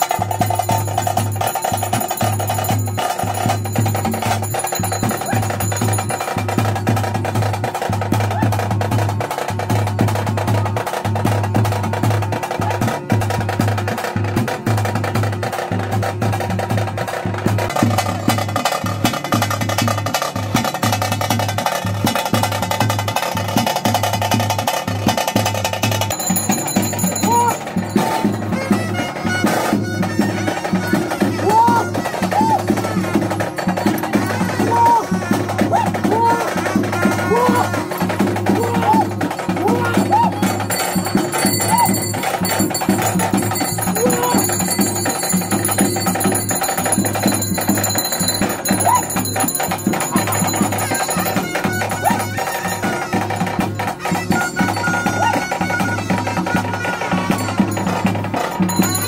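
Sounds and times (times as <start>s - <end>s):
fast continuous drumming: 0.0s - 59.0s
melody over drums: 0.0s - 59.0s.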